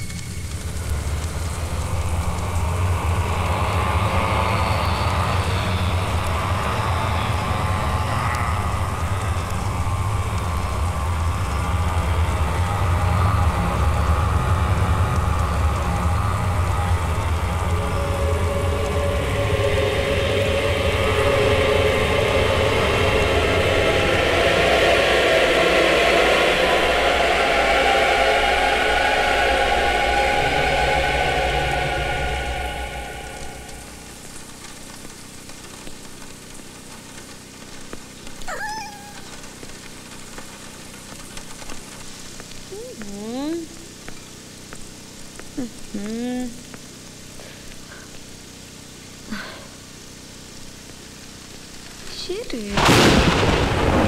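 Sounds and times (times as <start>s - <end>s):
low rumble: 0.0s - 35.8s
sustained drone: 0.0s - 37.7s
heavy rain: 0.0s - 54.0s.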